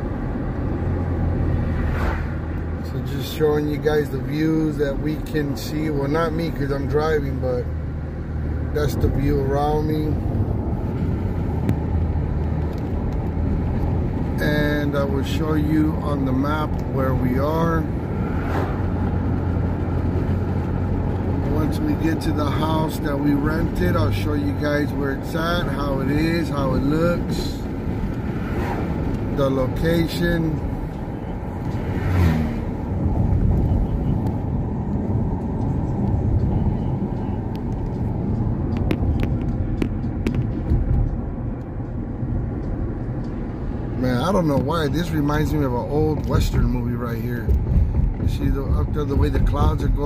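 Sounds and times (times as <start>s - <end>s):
car engine humming: 0.0s - 50.0s
tyres on road: 0.0s - 50.0s.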